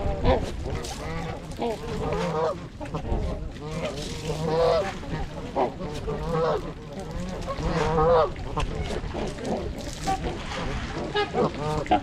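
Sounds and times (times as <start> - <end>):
geese and swans honking: 0.0 - 12.0.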